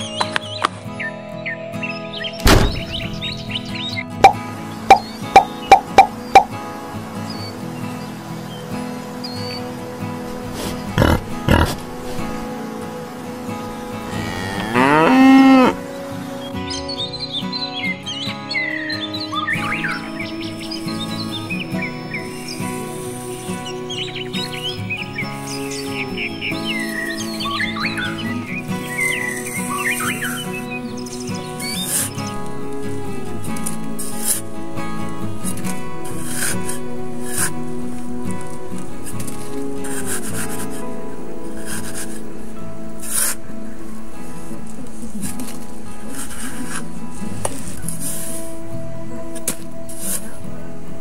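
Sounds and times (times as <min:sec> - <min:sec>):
birds chirping: 0:00.0 - 0:51.0
soft background music: 0:00.0 - 0:51.0
cow mooing: 0:10.9 - 0:11.9, 0:14.0 - 0:15.8.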